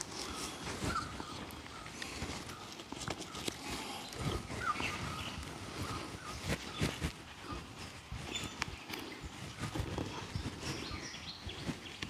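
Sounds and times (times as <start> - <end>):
bird chirp: 0.0 - 12.0.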